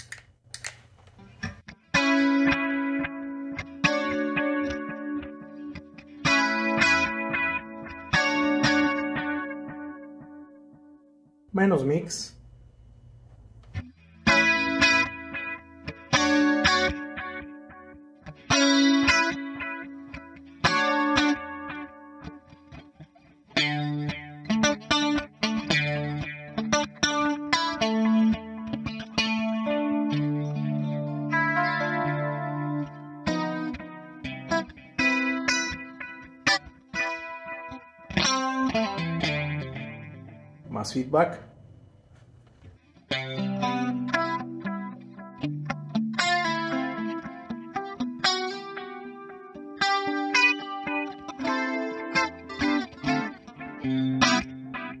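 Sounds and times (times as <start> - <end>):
clean electric guitar with delay: 1.4 - 11.0, 13.8 - 41.7, 42.9 - 55.0.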